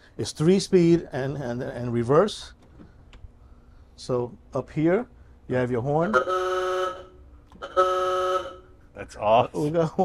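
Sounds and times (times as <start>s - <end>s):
car horn honks: 6.1s - 8.8s.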